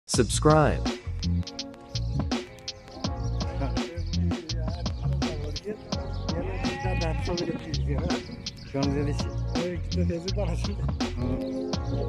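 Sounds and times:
background music with steady beat: 0:00.1 - 0:12.0
sheep bleating: 0:06.3 - 0:08.0.

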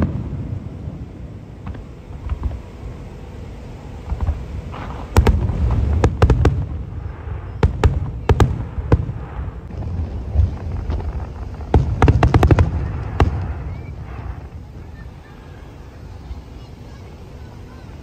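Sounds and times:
low rumble: 0:00.0 - 0:16.3
fireworks bursting: 0:00.0 - 0:18.0.

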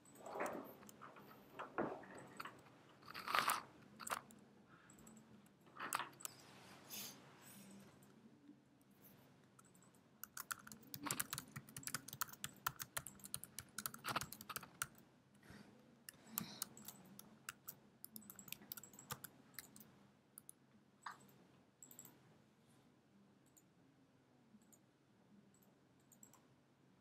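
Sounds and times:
typing on computer keyboard: 0:02.2 - 0:04.3, 0:09.6 - 0:15.0, 0:16.1 - 0:20.5.

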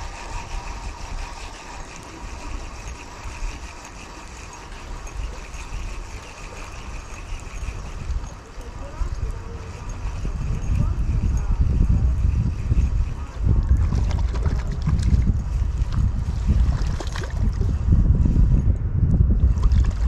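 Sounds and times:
fishing reel whirring: 0:00.0 - 0:17.8
wind buffeting microphone: 0:00.0 - 0:20.0.

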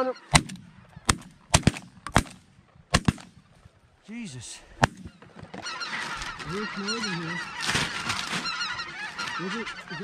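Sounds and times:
geese honking: 0:00.0 - 0:01.5, 0:04.2 - 0:10.0
shotgun shots: 0:00.3 - 0:03.5, 0:04.8 - 0:05.1.

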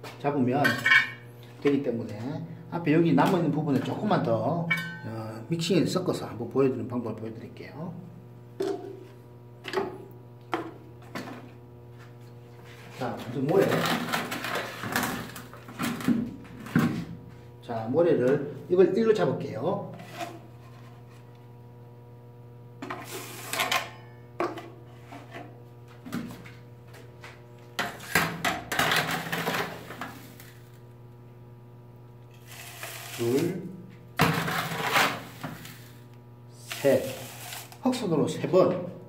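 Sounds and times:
low steady hum: 0:00.1 - 0:39.0
cup scooping and pouring sand: 0:32.4 - 0:33.5, 0:36.6 - 0:37.8.

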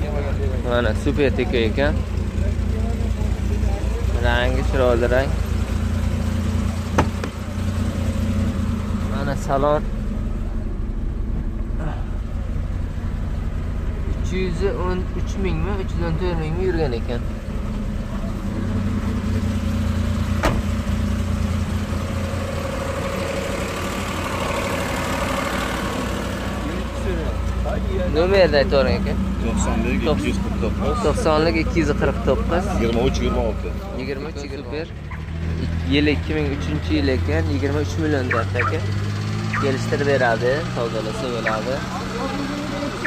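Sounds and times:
car engine idling: 0:00.0 - 0:43.0.

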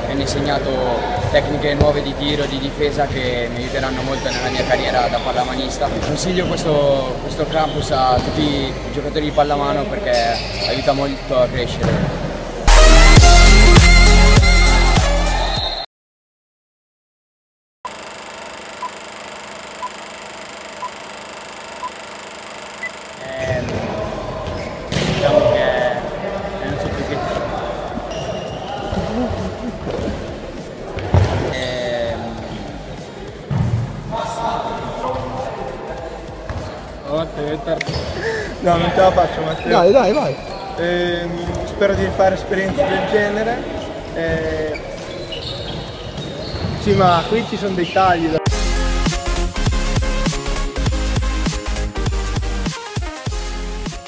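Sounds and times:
echoing hall background noise: 0:00.0 - 0:12.7, 0:17.9 - 0:48.4
short electronic beeps: 0:17.9 - 0:23.6.

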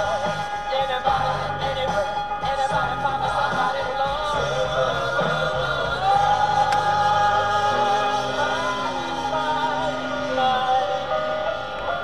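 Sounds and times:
car radio music with singing: 0:00.0 - 0:12.0.

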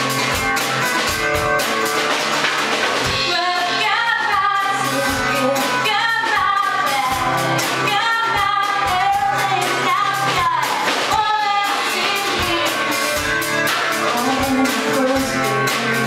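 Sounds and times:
drum kit beat: 0:00.0 - 0:16.0
strummed acoustic guitar: 0:00.0 - 0:16.0
woman singing pop-rock: 0:03.1 - 0:16.0.

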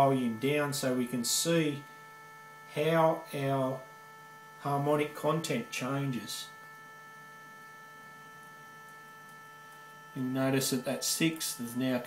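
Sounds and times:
buzzy fuzz test tone: 0:00.0 - 0:12.0.

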